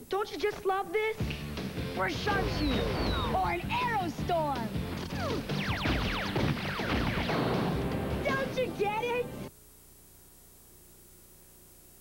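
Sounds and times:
falling whistle-like zap effects: 2.4s - 3.5s, 5.1s - 7.7s.

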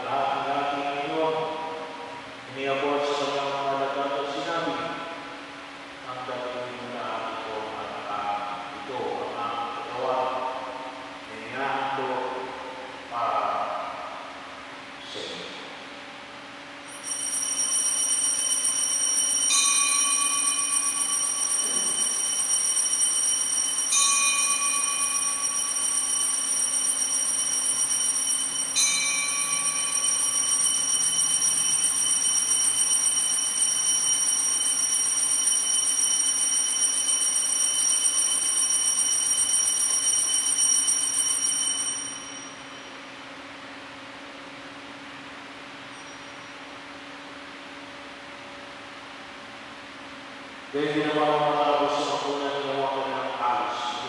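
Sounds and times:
altar bells ringing: 16.9s - 43.0s.

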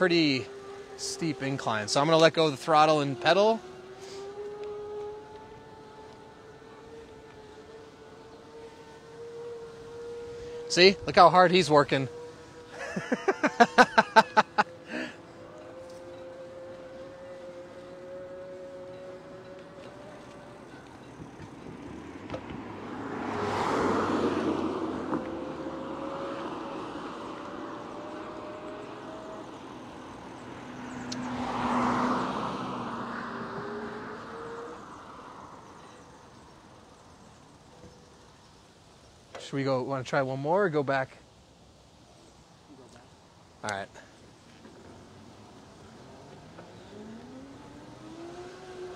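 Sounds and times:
cars passing on street: 0.0s - 48.9s
people laughing: 12.7s - 15.1s.

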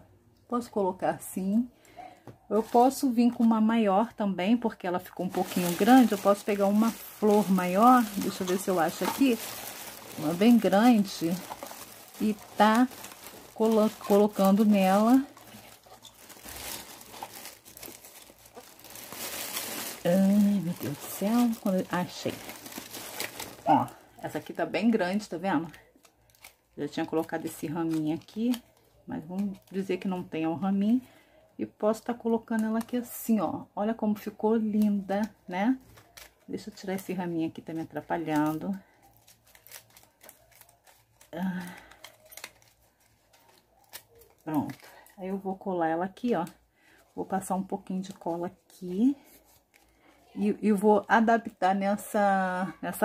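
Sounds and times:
paper rustling and crinkling: 5.0s - 24.3s, 34.7s - 45.2s.

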